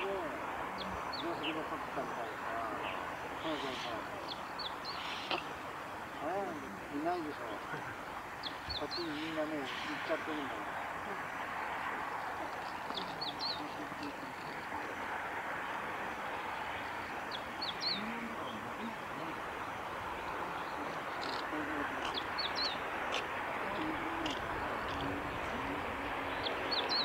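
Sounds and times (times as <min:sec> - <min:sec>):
outdoor background hiss: 0:00.0 - 0:27.0
bird high chip calls: 0:00.8 - 0:06.2, 0:20.4 - 0:25.2.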